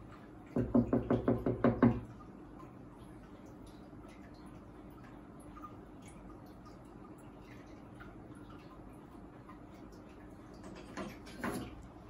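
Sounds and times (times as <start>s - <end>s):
knuckles knocking on glass: 0.6s - 2.0s.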